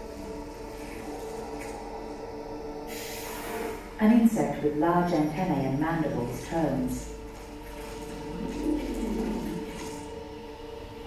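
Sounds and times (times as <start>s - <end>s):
sustained music chord: 0.0s - 11.0s
jungle ambience hiss: 2.8s - 4.2s.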